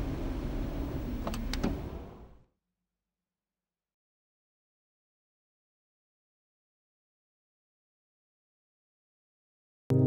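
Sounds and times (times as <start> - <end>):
low rumbling car cabin noise: 0.0 - 2.4.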